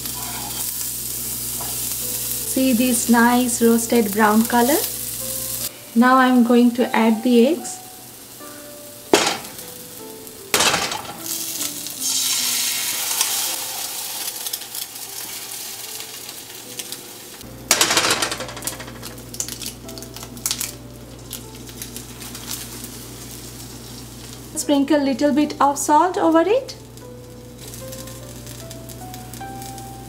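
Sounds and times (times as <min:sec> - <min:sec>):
eggs sizzling in pan: 0:00.0 - 0:30.0
eggs cracking: 0:17.7 - 0:22.7.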